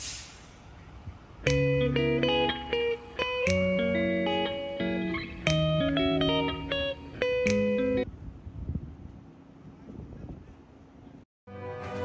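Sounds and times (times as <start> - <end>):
theme music: 11.5 - 12.0.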